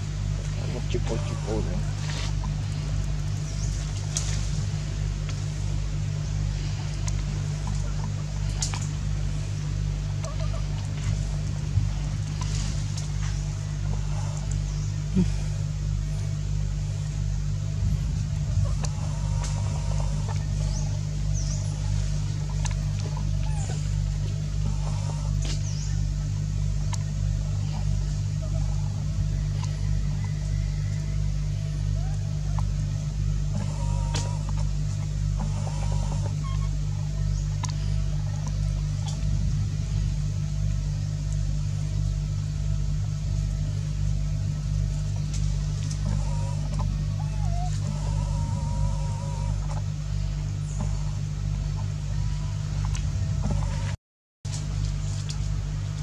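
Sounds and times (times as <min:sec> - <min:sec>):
low pulsing motor hum: 0:00.0 - 0:56.0.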